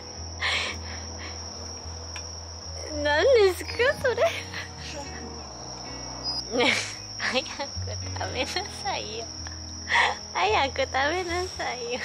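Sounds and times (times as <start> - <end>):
crickets trilling: 0.0 - 12.0
woman speaking: 2.8 - 4.6, 10.4 - 12.0
woman laughing: 6.5 - 8.6.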